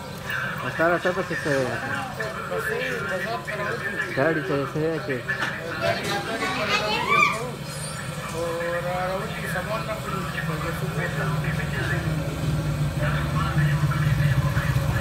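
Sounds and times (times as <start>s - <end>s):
small engine rumbling: 0.0s - 15.0s
voices: 0.0s - 15.0s.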